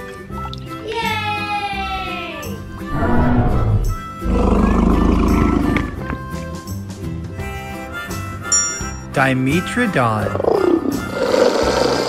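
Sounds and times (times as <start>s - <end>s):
cheerful children's music: 0.0s - 11.3s
dinosaur roar: 2.8s - 6.0s, 10.4s - 12.0s.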